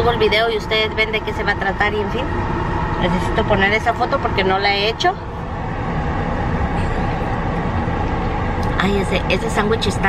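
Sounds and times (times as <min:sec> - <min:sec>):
car engine rumble from cabin: 0:00.0 - 0:10.0.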